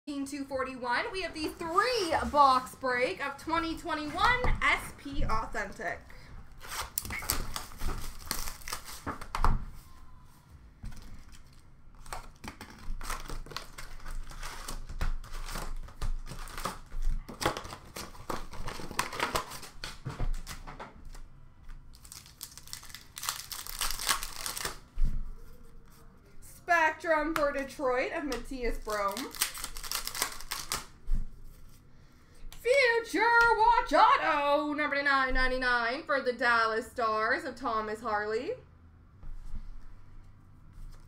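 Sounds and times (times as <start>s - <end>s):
plastic wrappers torn and crinkled: 6.6s - 9.4s, 10.9s - 24.9s, 28.8s - 31.0s.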